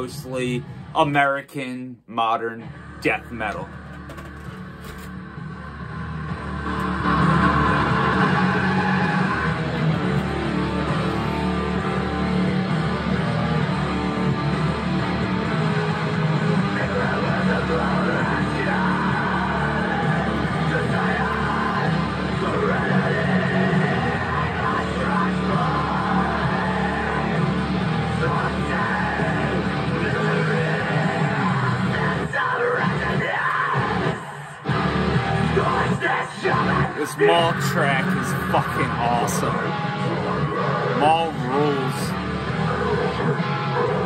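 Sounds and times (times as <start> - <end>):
death metal music: 2.7 - 44.0.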